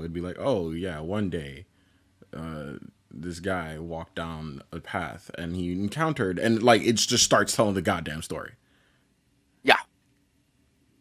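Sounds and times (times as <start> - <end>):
man saying yeah: 2.4 - 7.3.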